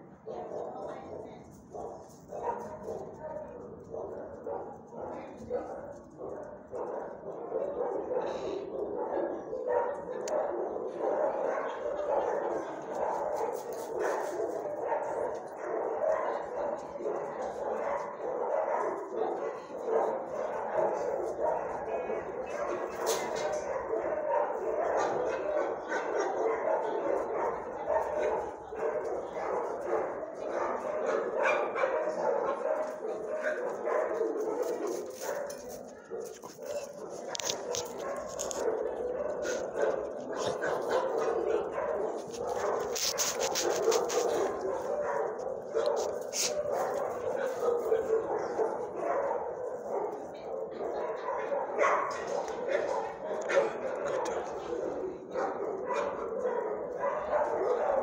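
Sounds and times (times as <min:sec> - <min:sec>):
dogs barking and yipping: 0:01.8 - 0:58.0.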